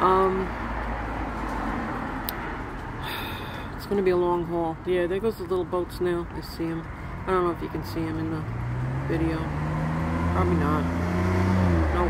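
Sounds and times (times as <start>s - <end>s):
distant road traffic: 0.0s - 12.0s.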